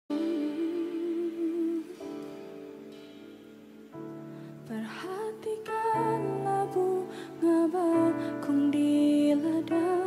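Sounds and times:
woman singing long note: 0.1s - 2.1s
soft sustained backing chord: 0.1s - 10.0s.

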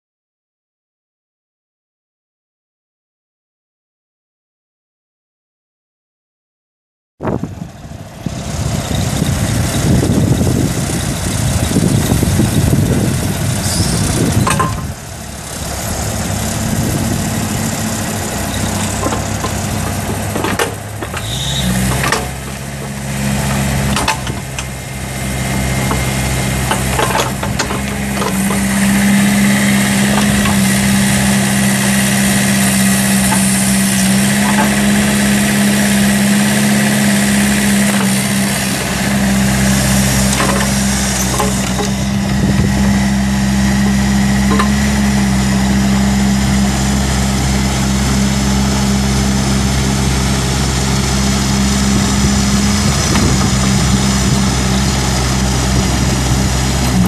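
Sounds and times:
excavator diesel engine running: 7.3s - 57.0s.

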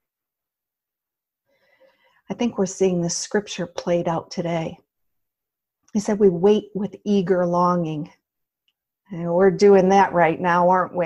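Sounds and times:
person speaking: 9.1s - 11.0s.

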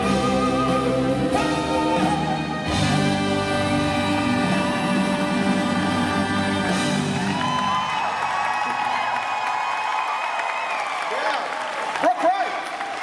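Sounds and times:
live band playing a ballad: 0.0s - 7.8s
audience whooping and cheering: 1.3s - 3.4s, 6.7s - 13.0s.

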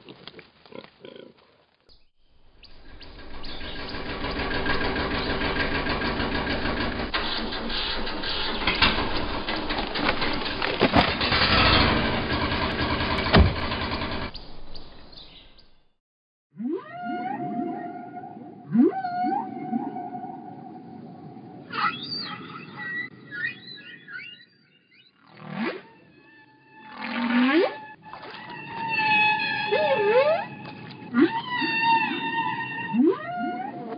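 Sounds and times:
low hum: 2.3s - 15.9s
loud machinery noise: 2.7s - 14.3s
heavy thump: 13.1s - 14.3s
whale song calls: 16.6s - 33.9s.

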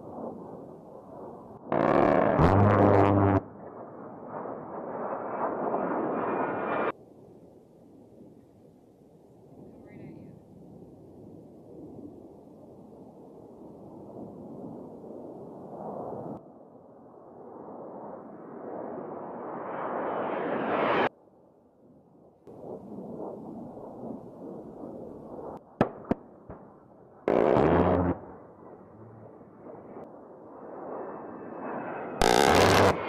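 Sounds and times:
jet engine noise: 0.0s - 7.0s, 18.4s - 21.1s, 22.5s - 33.0s
loud burst: 1.7s - 3.6s, 27.3s - 29.3s, 32.2s - 33.0s
sharp cracks: 1.7s - 3.8s, 25.8s - 28.8s, 32.2s - 33.0s.

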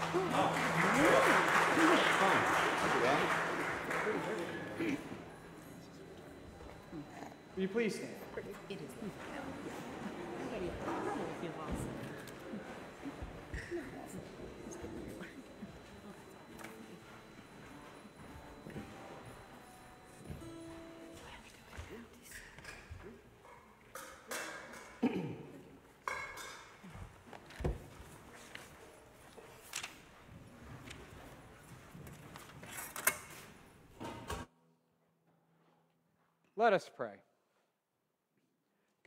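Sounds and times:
congregation applauding: 0.0s - 5.8s
voices: 0.0s - 20.3s.

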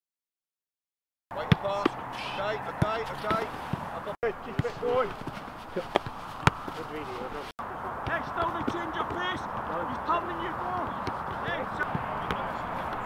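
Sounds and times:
players shouting: 1.3s - 13.0s
football being kicked: 1.4s - 2.0s, 2.8s - 6.8s, 10.7s - 13.0s.

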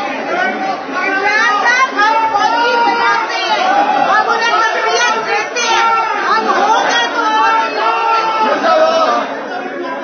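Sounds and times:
crowd talking hubbub: 0.0s - 10.0s.

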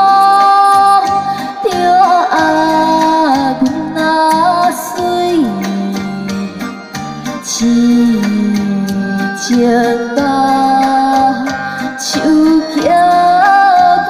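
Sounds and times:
woman singing slow song: 0.0s - 6.4s, 7.4s - 14.0s
music accompaniment: 0.0s - 14.0s.

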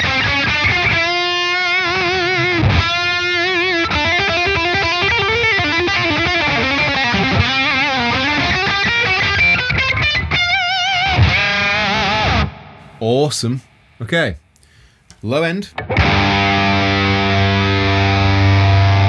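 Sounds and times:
fuzzy electric guitar lead: 0.0s - 13.0s, 15.7s - 19.0s.

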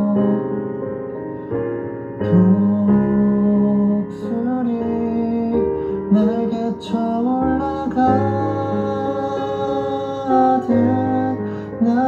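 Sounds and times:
man singing: 0.0s - 0.5s, 2.2s - 12.0s
instrumental accompaniment: 0.0s - 12.0s.

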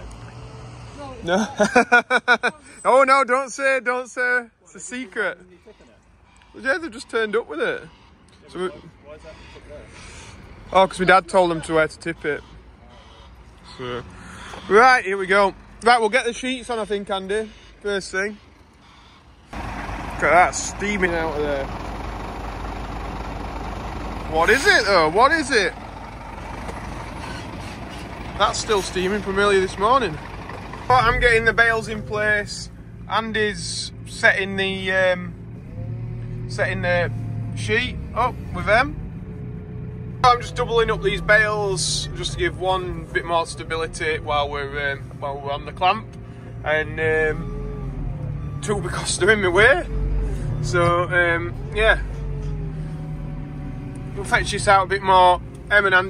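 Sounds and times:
diesel engine running: 17.3s - 56.0s.

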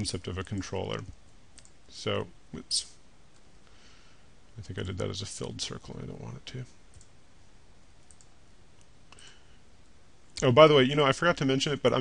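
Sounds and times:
low steady room hum: 0.0s - 12.0s
computer mouse clicks: 1.5s - 1.8s, 8.0s - 9.2s.

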